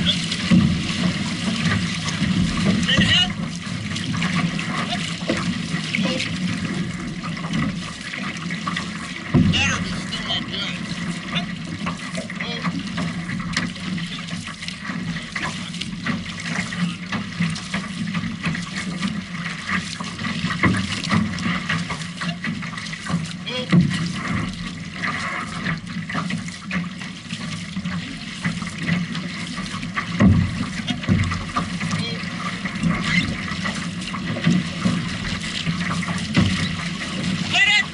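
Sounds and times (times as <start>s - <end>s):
paddles dipping through water: 0.0s - 37.9s
water splashing along hull: 0.0s - 37.9s.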